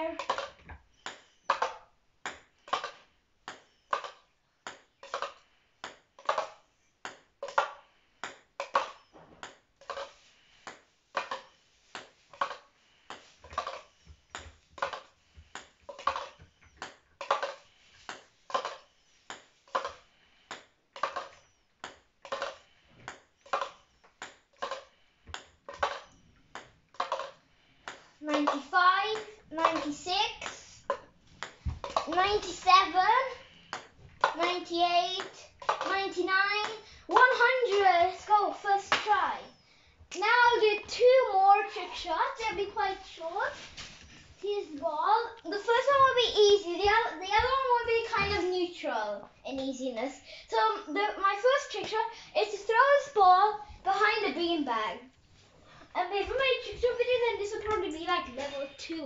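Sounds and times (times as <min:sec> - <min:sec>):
ping pong ball bouncing in cup: 0:00.2 - 0:34.5, 0:35.2 - 0:36.0.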